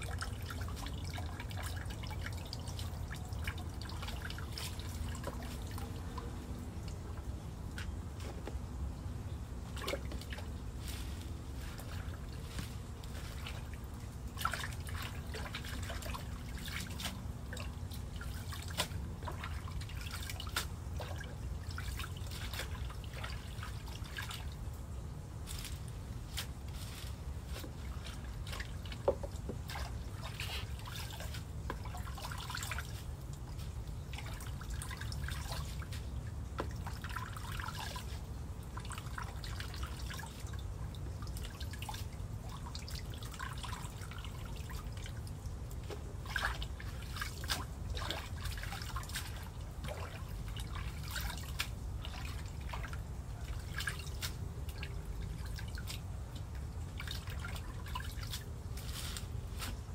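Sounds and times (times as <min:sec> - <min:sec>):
water dripping and splashing: 0:00.0 - 0:08.6, 0:09.5 - 0:59.9.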